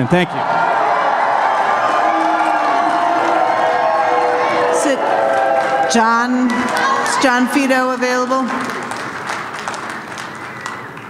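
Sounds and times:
crowd applause in a hall: 0.0s - 11.0s.

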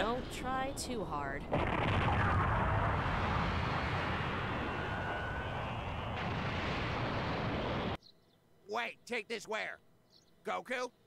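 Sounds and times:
rumbling rushing blast: 1.5s - 8.0s.

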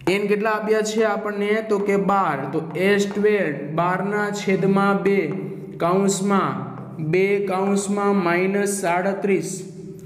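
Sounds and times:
man lecturing: 0.0s - 9.9s.

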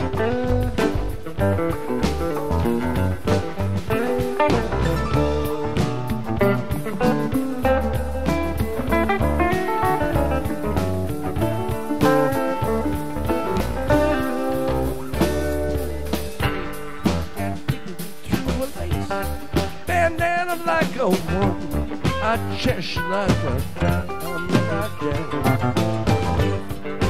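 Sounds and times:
electric guitar lead lines: 0.0s - 27.0s
live rock band playing: 0.0s - 27.0s.

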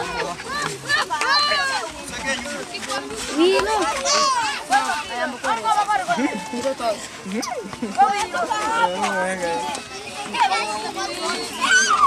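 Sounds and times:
children shouting and chattering: 0.0s - 12.0s
child's high rising shout: 11.6s - 12.0s.

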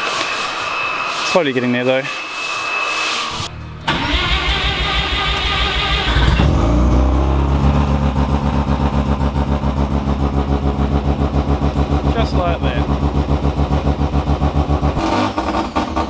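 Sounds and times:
car engine cranking and idling: 3.5s - 16.0s.

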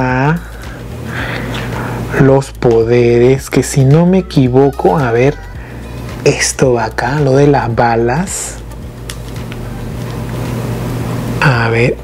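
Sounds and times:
low hum: 4.4s - 12.0s.

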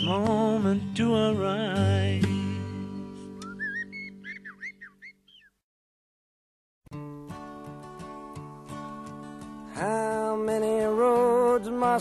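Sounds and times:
blackbird singing: 0.0s - 1.5s, 3.4s - 5.6s.

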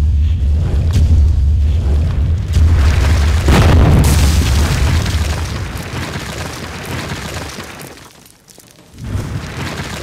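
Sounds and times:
deep rumbling boom: 0.1s - 5.7s
crackle of crumbling rubble: 2.6s - 10.0s.

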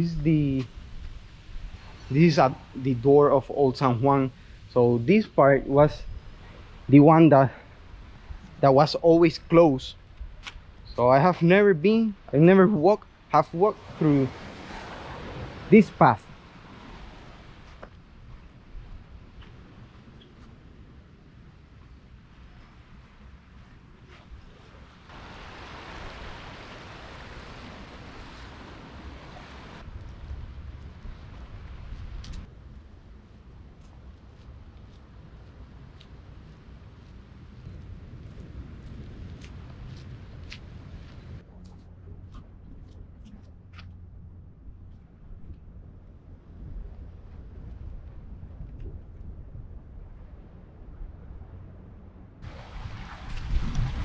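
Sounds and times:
wind rumbling on microphone: 0.0s - 54.0s.

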